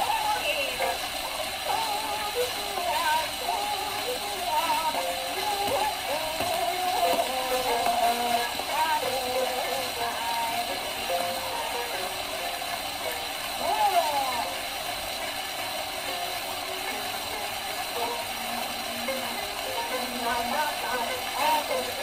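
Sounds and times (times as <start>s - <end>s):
chanted vocals: 0.0s - 14.7s, 16.2s - 22.0s
record surface hiss and crackle: 0.0s - 22.0s
shamisen: 0.0s - 22.0s.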